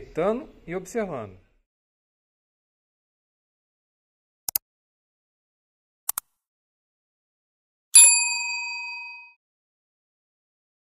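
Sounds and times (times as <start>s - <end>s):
notification bell ding: 8.0s - 9.4s.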